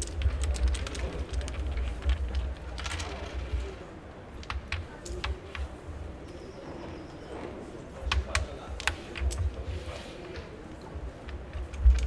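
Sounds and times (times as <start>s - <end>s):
wooden game pieces clicking: 0.0s - 3.8s, 4.4s - 5.7s, 8.0s - 10.5s, 11.1s - 12.0s.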